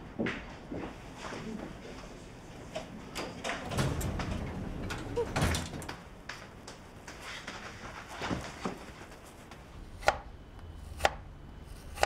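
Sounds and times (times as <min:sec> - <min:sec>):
footsteps on hard floor: 0:00.0 - 0:02.2, 0:06.2 - 0:09.6
door shutting: 0:02.8 - 0:06.4.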